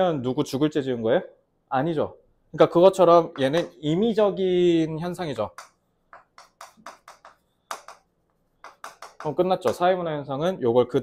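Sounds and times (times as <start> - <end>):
chalk writing on chalkboard: 5.5 - 9.8.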